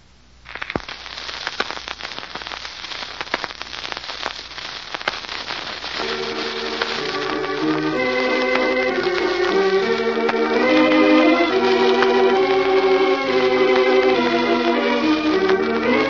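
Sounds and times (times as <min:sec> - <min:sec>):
crackling record surface noise: 0:00.0 - 0:16.0
music with organ-like tones: 0:06.0 - 0:16.0.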